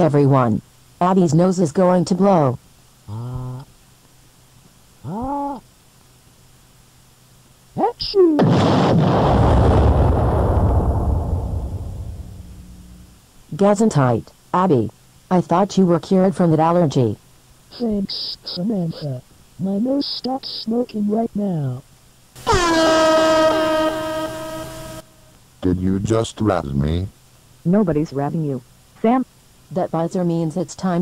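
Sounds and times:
cartoon explosion blast: 8.4s - 12.8s
buzzer long tone: 11.6s - 13.1s, 22.4s - 25.2s.

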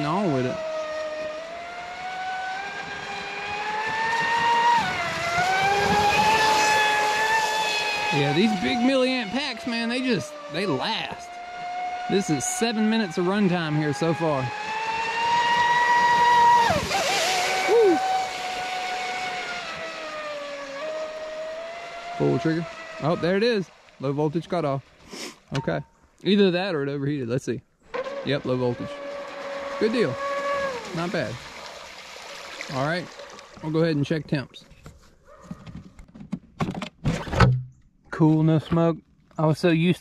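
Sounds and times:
high-pitched motor whine: 0.0s - 23.5s, 27.9s - 31.3s
plastic hull knocks and clicks: 34.8s - 37.8s.

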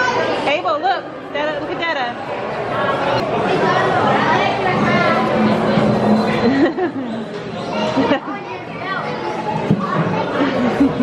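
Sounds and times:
children's voices: 0.0s - 0.5s, 2.8s - 6.6s, 7.3s - 11.0s
chatter of voices: 0.0s - 11.0s.

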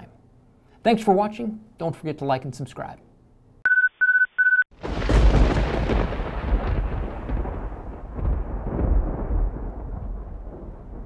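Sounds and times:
thunder clap rumbling: 4.8s - 11.0s.

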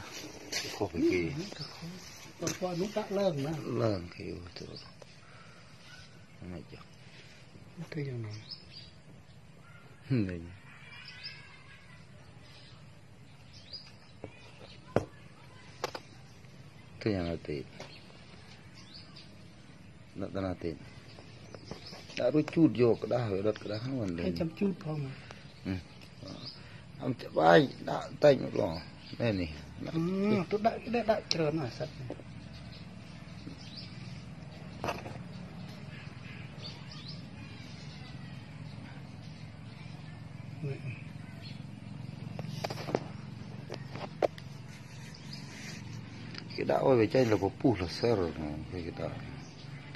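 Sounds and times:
faint background noise: 0.0s - 49.9s.

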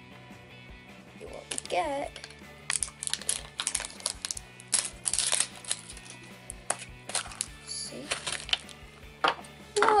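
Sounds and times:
background music: 0.0s - 10.0s
plastic wrapper crinkling: 1.4s - 8.8s.

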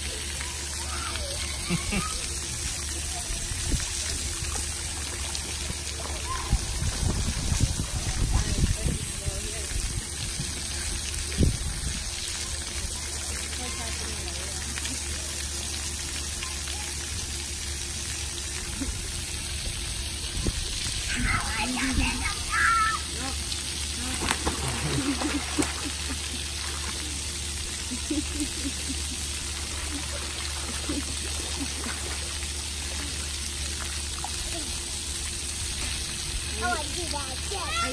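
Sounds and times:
children's voices and laughter: 0.0s - 4.8s, 16.2s - 17.3s, 18.6s - 19.6s, 20.4s - 23.5s, 24.2s - 33.3s, 36.5s - 37.9s
water jets spraying: 0.0s - 37.9s
child splashing in water: 21.2s - 34.8s.

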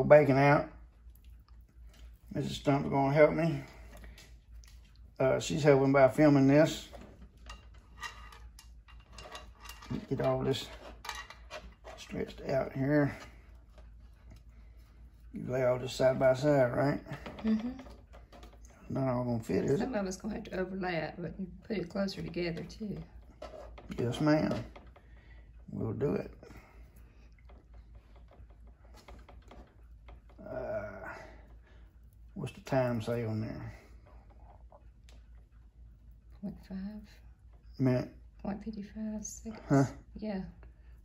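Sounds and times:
low steady hum: 0.0s - 41.0s.

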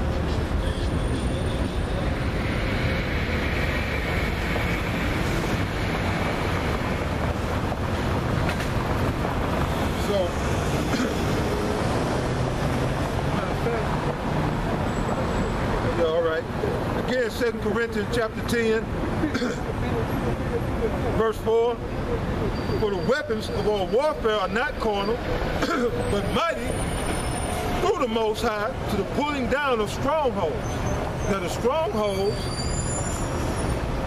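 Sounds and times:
road traffic: 0.0s - 34.0s.

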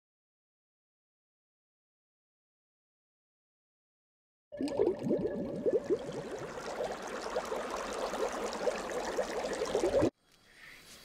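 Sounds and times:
water bubbling and gurgling: 4.6s - 10.1s.

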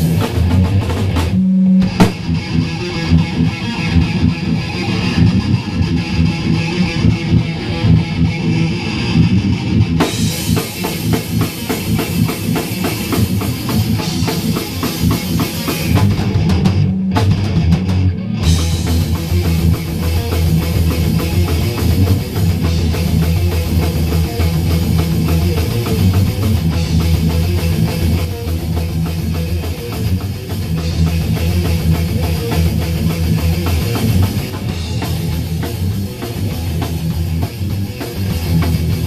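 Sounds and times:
bass guitar: 0.0s - 39.0s
distorted electric guitars: 0.0s - 39.0s
drum kit: 0.0s - 39.0s.

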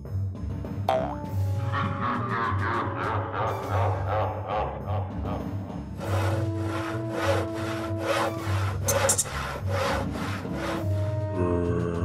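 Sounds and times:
handsaw sawing through wood: 6.0s - 11.2s.

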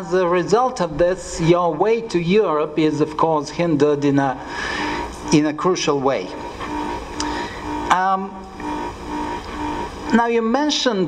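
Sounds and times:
faint pulsing tone: 6.6s - 9.9s.

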